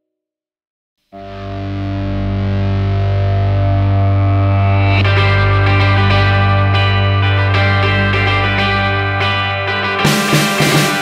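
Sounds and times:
distorted electric guitar chord: 1.2 - 11.0.

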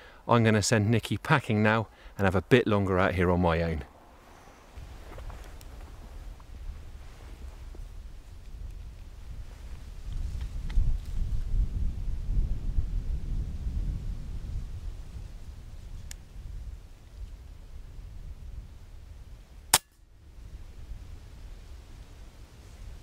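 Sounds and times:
faint click: 16.0 - 16.2.

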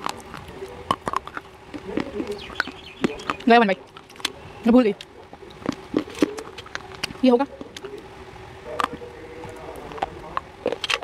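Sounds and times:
crackly chewing crunches: 0.0 - 11.0.

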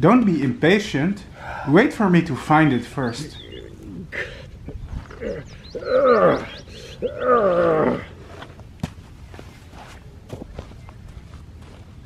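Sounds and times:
man groaning with effort: 5.2 - 8.1.

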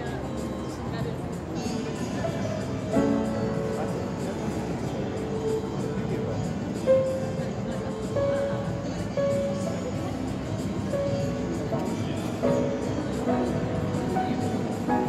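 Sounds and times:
upright piano played slowly: 1.5 - 15.0.

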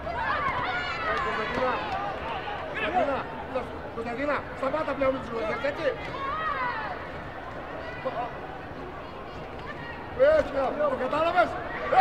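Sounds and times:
people calling and shouting: 0.0 - 12.0.

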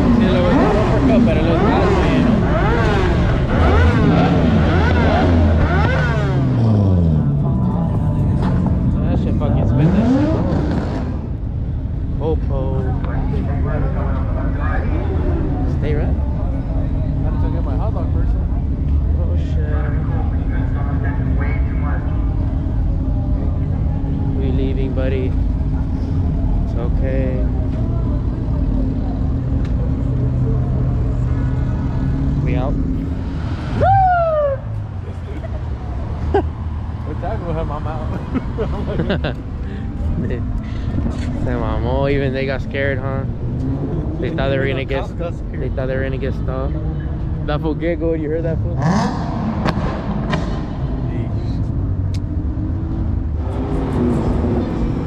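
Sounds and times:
vehicle engines revving: 0.0 - 55.0.

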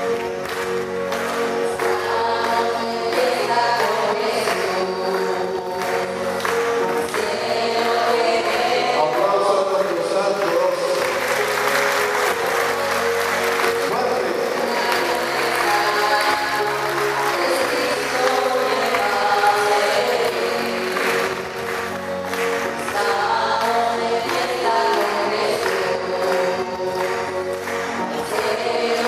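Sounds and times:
choir and congregation singing hymn: 0.0 - 29.0
hand clapping: 0.0 - 29.0
instrumental accompaniment: 0.0 - 29.0.

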